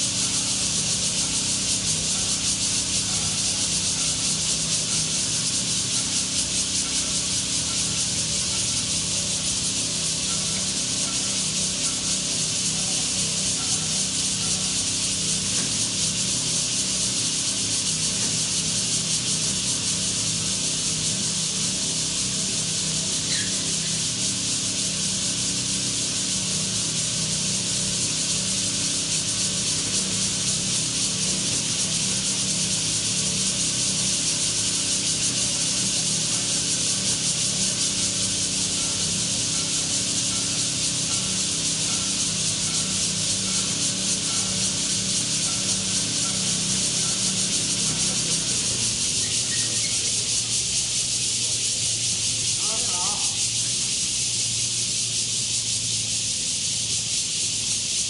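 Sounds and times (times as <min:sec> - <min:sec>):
high-pitched cicada hiss: 0:00.0 - 0:58.0.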